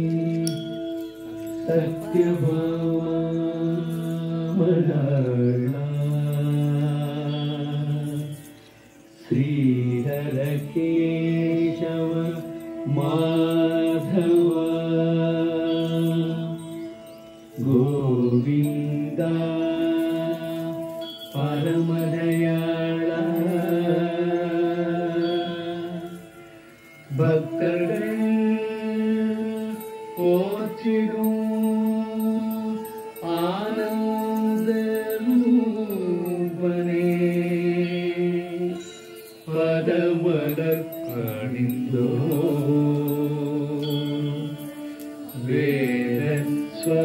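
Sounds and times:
person chanting long held notes: 0:00.0 - 0:47.0.

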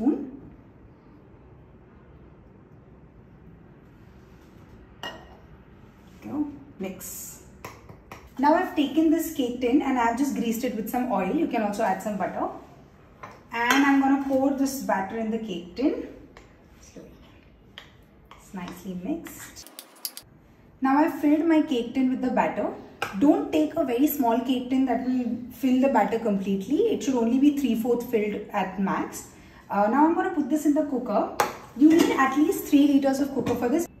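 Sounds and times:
spoon scraping and tapping bowl: 0:19.6 - 0:20.3.

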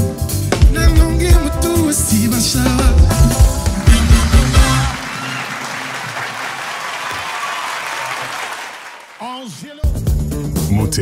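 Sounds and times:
audience applauding: 0:03.2 - 0:09.6.

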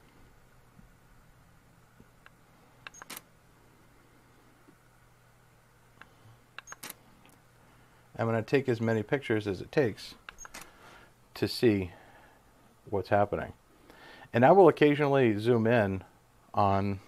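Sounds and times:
faint steady hum: 0:00.0 - 0:17.0
camera shutter clicking: 0:02.9 - 0:03.3.

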